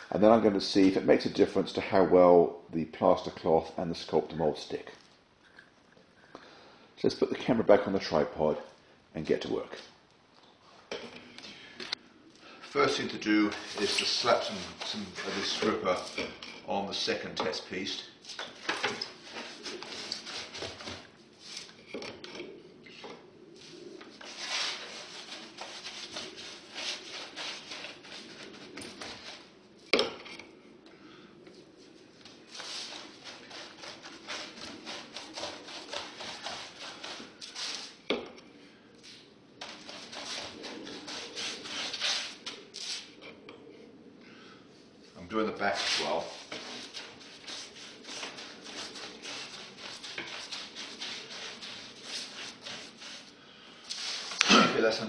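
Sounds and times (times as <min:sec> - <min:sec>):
paintbrush scrubbing on foam board: 0:12.8 - 0:16.3, 0:19.1 - 0:21.7, 0:24.2 - 0:29.5, 0:32.5 - 0:38.0, 0:39.6 - 0:43.1, 0:45.6 - 0:54.4.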